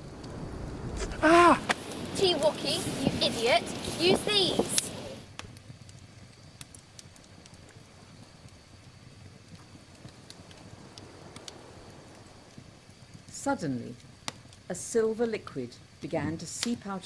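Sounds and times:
campfire crackling: 0:00.0 - 0:17.0
faint fire hiss: 0:00.0 - 0:17.0
sharp pops of fire: 0:00.0 - 0:17.0.

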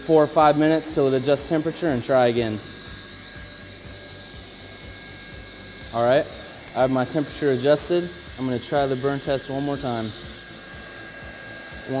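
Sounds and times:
hot-air blower hissing: 0:00.0 - 0:12.0.

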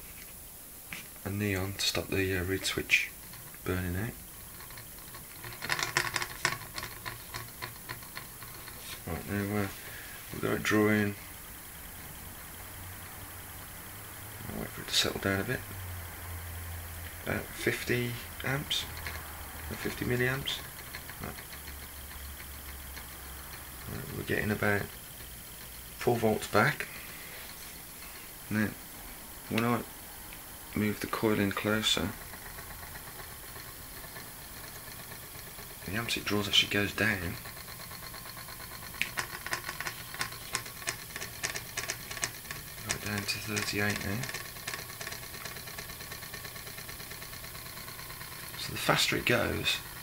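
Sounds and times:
pulse motor humming: 0:02.0 - 0:29.4, 0:30.7 - 0:50.0.

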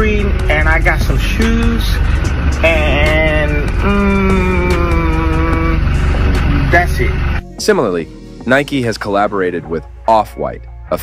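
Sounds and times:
man humming: 0:00.0 - 0:06.7
car interior rumble: 0:00.0 - 0:07.4.

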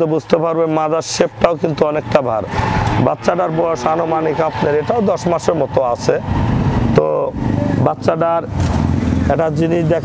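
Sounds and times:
men speaking: 0:00.0 - 0:08.6, 0:09.2 - 0:10.0
low engine hum: 0:00.0 - 0:10.0.

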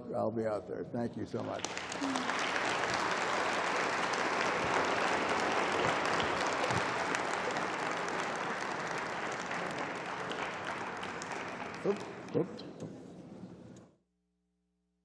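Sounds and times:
audience applauding: 0:01.3 - 0:12.6.

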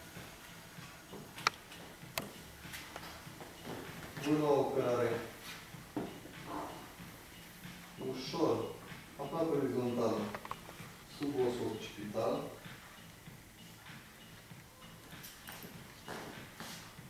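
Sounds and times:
person speaking: 0:08.0 - 0:12.6.

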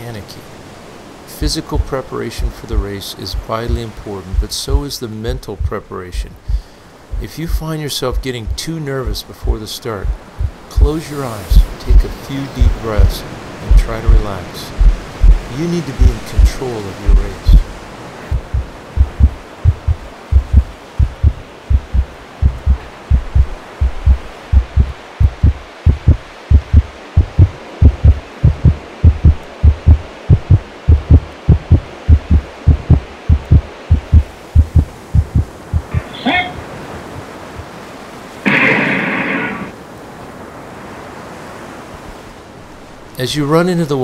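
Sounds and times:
steady hiss: 0:00.0 - 0:44.0
heartbeat thumps: 0:01.4 - 0:05.8, 0:06.4 - 0:36.0.

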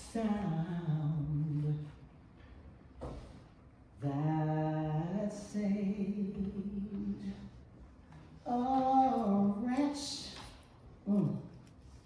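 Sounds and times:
woman singing unaccompanied: 0:04.0 - 0:07.5, 0:08.5 - 0:10.4.

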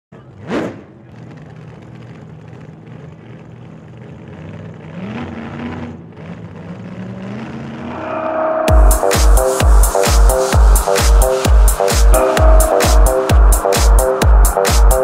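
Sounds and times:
road noise: 0:00.1 - 0:15.0
car engine running: 0:00.2 - 0:15.0.

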